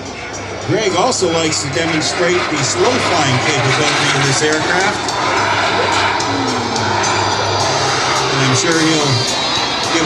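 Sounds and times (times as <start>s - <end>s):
background music: 0.0s - 10.0s
model jet turbine flying overhead: 0.0s - 10.0s.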